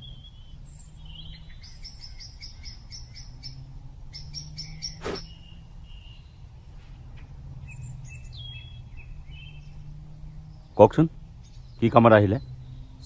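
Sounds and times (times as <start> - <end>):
birds chirping: 0.0 - 13.0.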